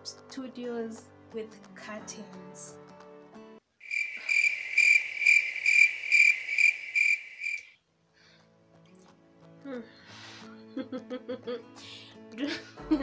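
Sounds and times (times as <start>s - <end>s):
background music: 0.0s - 3.6s, 7.9s - 13.0s
crickets chirping: 3.8s - 7.8s.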